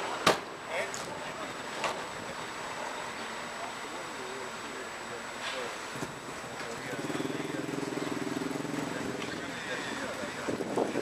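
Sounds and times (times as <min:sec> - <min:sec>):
street noise: 0:00.0 - 0:11.0
vehicle engine running: 0:06.2 - 0:11.0
wind buffeting microphone: 0:10.2 - 0:11.0.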